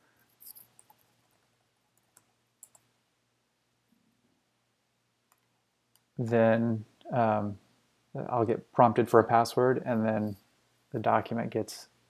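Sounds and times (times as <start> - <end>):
faint mouse and keyboard clicks: 0.4 - 2.9, 5.3 - 6.1.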